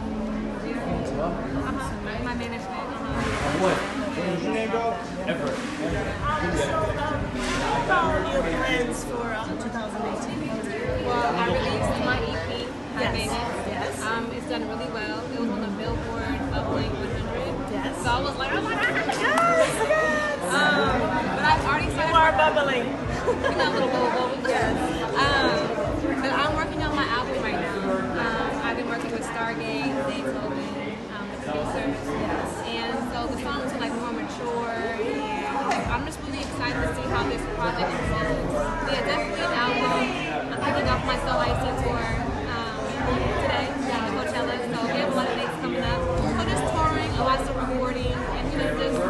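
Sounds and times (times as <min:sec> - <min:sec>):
crowd chatter: 0:00.0 - 0:49.0
music: 0:45.8 - 0:49.0.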